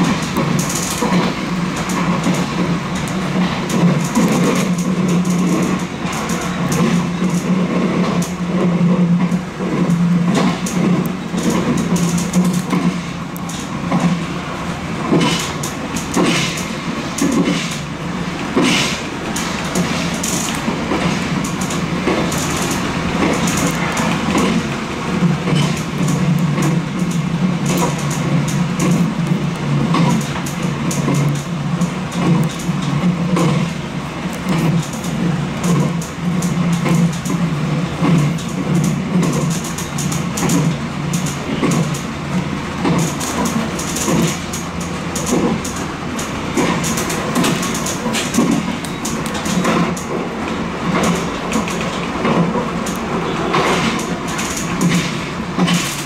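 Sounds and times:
electric train humming: 0.0s - 56.0s
wheels clicking over rail joints: 0.0s - 56.0s
wheels running on rails: 0.0s - 56.0s.

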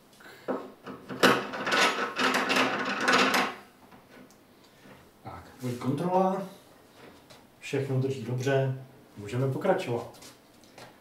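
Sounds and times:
threaded rod scraping and rattling: 0.9s - 4.3s.

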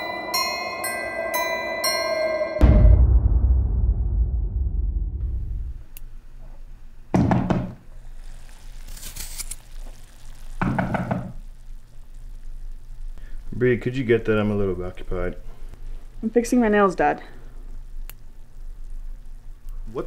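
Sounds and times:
deep boom: 2.6s - 5.9s
knocking on a door: 7.2s - 7.8s.

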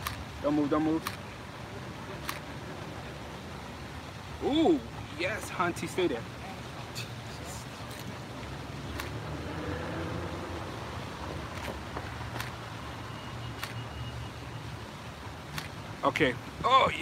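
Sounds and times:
city street traffic rumble: 0.0s - 17.0s
sharp clicks: 1.0s - 1.2s, 2.2s - 2.5s, 8.9s - 9.2s, 11.5s - 12.6s, 13.6s - 13.8s, 15.5s - 15.8s.

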